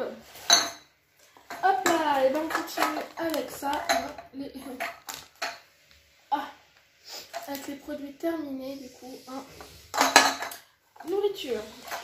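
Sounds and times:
packaging rattling in a bag: 2.1 - 4.0.

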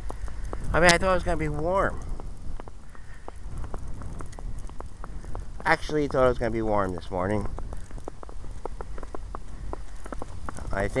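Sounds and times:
small clicks and crackles: 0.0 - 11.0
wind rumble on microphone: 0.0 - 11.0.

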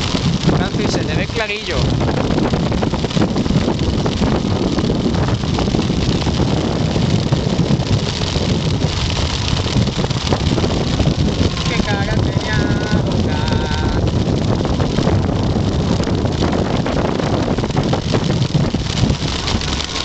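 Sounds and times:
motorcycle engine running: 0.0 - 20.0
wind buffeting microphone: 0.0 - 20.0.

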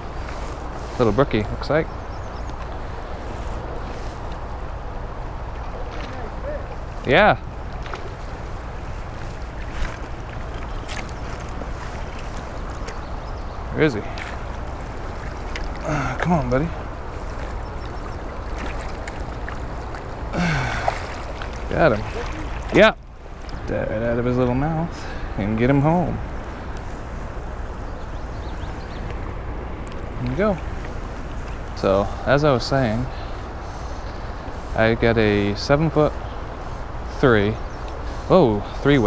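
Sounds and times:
stream water flowing: 0.0 - 39.0
brook rushing over rocks: 5.7 - 24.2.

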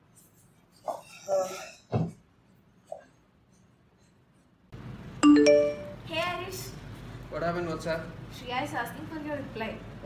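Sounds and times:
two-note notification chime: 5.2 - 6.0.

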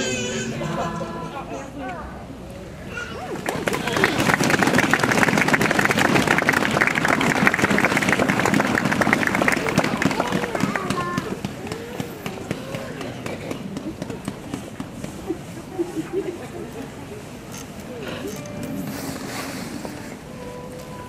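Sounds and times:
voices talking: 0.0 - 4.3
audience applause: 3.4 - 14.0.

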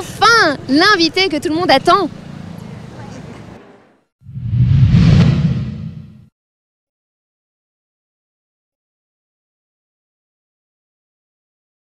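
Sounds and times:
outdoor street background noise: 0.0 - 4.1
low hum: 4.3 - 6.3.

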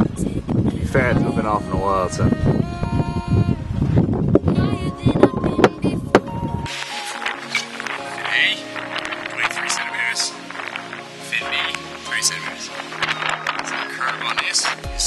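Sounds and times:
wind buffeting microphone: 0.0 - 6.7
background music: 0.0 - 15.0.

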